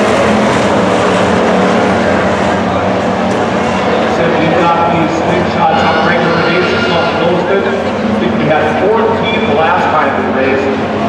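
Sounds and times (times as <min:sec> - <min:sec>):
indistinct voices: 0:04.1 - 0:08.5.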